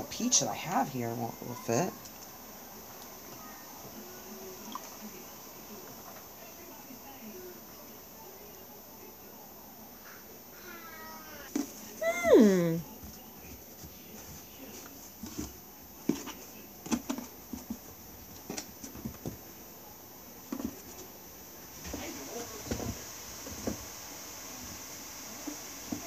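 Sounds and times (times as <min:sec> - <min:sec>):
cat meowing: 0:10.6 - 0:12.8.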